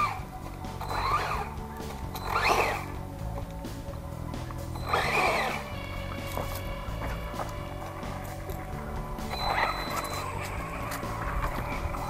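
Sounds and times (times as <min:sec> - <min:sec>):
background music: 0:00.0 - 0:12.0
wavering rising and falling sound: 0:04.1 - 0:12.0.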